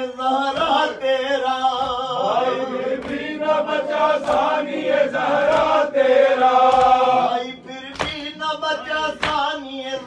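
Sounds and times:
men chanting a lament in unison: 0.0 - 10.0.

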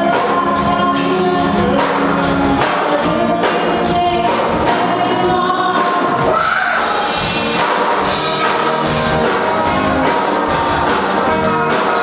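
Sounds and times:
drum kit: 0.0 - 12.0
electric guitars: 0.0 - 12.0
person singing: 0.0 - 12.0.

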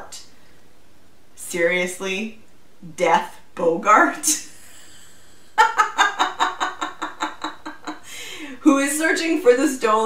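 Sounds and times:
woman laughing: 4.6 - 8.8.

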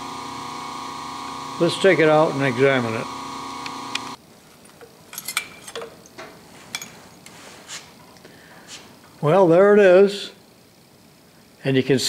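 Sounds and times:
machine hum: 0.0 - 11.6
light metallic clinks and knocks: 4.4 - 7.4.

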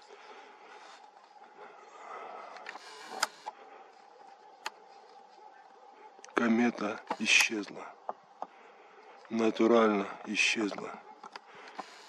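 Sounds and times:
faint steady tone: 0.0 - 12.0
camera handling rustle: 2.5 - 3.6.

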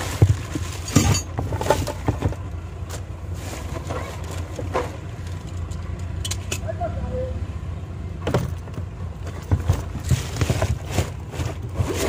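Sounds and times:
plastic bags crinkling: 0.0 - 2.0.

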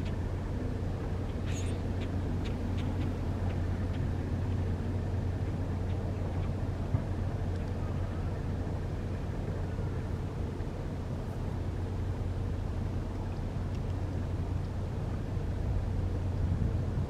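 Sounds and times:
ship engine rumble: 0.0 - 17.0.

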